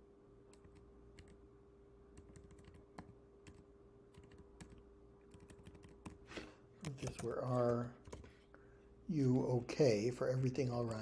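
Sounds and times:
faint steady hum: 0.0s - 11.0s
faint keyboard keystrokes: 6.8s - 8.4s.

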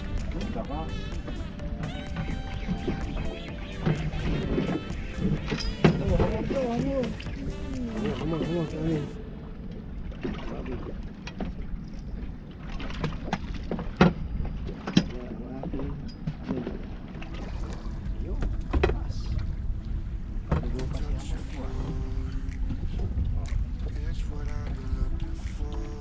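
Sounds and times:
wind and water against hull: 0.0s - 26.0s.

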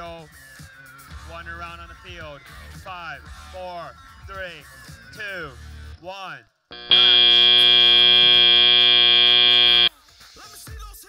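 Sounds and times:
high buzzer tone: 6.7s - 9.9s.

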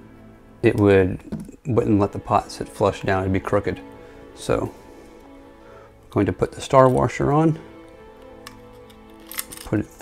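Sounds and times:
background music of held tones: 0.0s - 10.0s.

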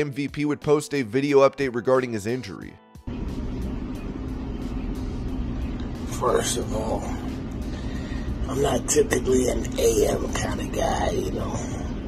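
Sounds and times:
low room rumble: 3.1s - 12.0s.

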